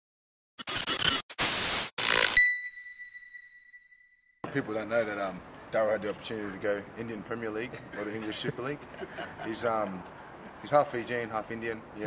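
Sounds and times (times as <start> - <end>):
harsh static glitch: 0.6 - 2.8.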